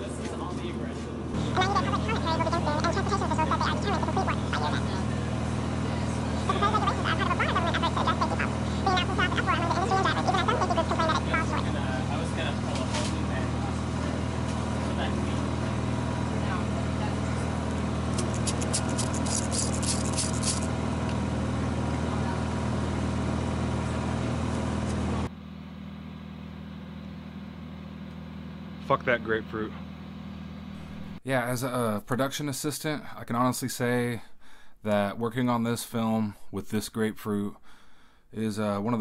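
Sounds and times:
low mechanical hum: 0.0s - 39.0s.

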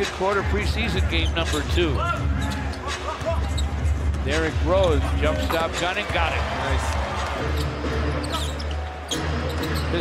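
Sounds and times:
arena music: 0.0s - 10.0s.

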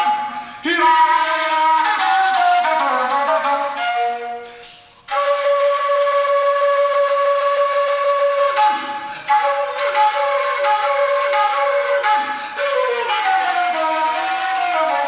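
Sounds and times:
flute playing solo: 0.0s - 15.0s.

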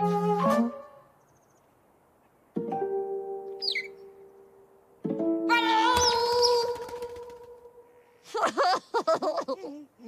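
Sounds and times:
cartoon bird chirp: 3.6s - 4.0s, 5.6s - 6.8s.

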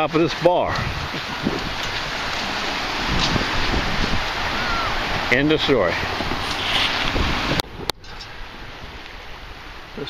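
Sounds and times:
surf washing on beach: 0.0s - 10.0s
wind buffeting microphone: 0.0s - 10.0s.

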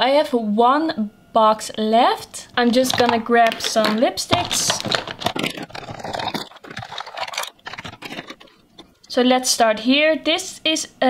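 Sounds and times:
plastic tubes clattering on wood: 2.7s - 8.9s.

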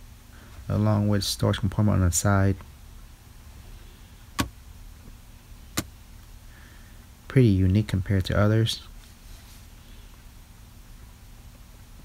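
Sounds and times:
faint low steady hum: 0.0s - 12.0s.

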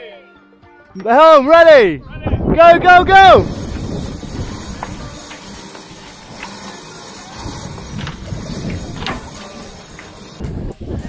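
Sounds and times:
rope running up mast: 2.9s - 10.9s
steady hiss: 3.2s - 10.6s.

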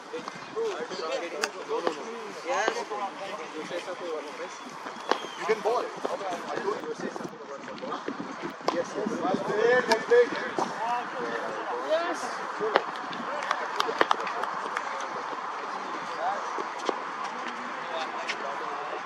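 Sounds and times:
people talking: 0.0s - 19.0s.

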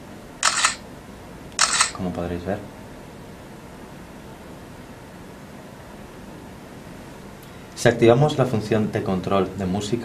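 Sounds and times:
phone camera shutter click: 0.4s - 0.8s, 1.6s - 2.0s.

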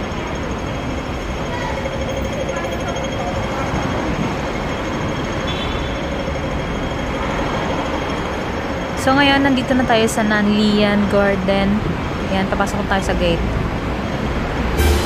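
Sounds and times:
faint voices of passers-by: 0.0s - 14.6s
road traffic: 0.0s - 15.0s.

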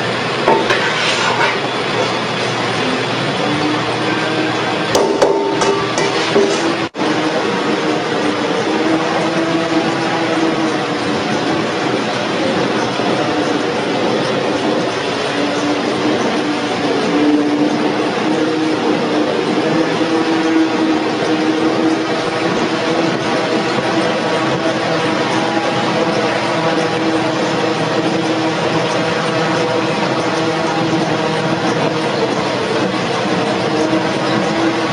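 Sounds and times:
oil press machine running: 0.0s - 34.9s.

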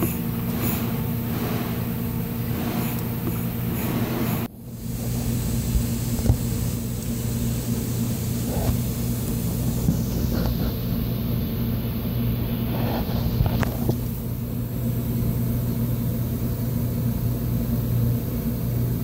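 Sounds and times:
machine humming: 0.0s - 16.5s.

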